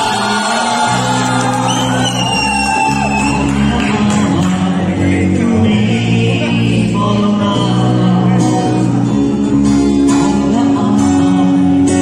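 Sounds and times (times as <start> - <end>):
live band playing loud music: 0.0 - 12.0.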